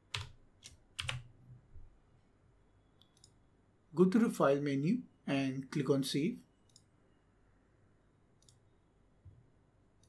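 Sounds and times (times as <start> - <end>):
computer mouse click: 3.0 - 3.4, 6.7 - 6.9, 8.4 - 8.7.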